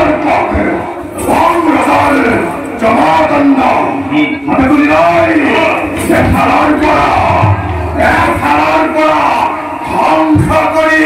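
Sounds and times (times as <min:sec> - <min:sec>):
men shouting battle cries: 0:05.5 - 0:10.8.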